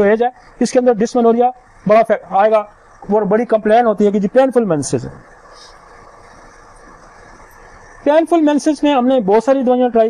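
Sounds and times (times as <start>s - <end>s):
low background hiss and hum: 0.0s - 10.0s.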